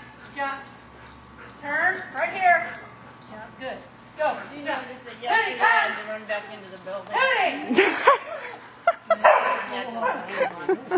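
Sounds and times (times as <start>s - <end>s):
dog barking: 9.2s - 10.2s.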